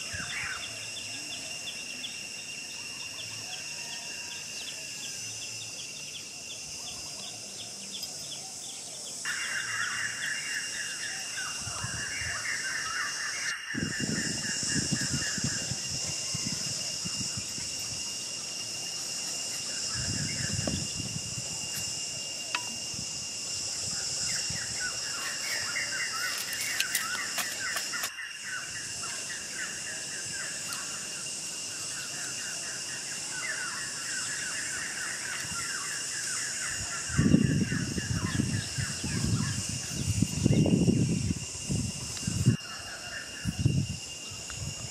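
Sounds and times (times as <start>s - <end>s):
high-pitched hiss: 0.0s - 44.9s
thin whistle-like tone: 22.4s - 23.0s
sticks rustling and knocking: 26.3s - 28.1s.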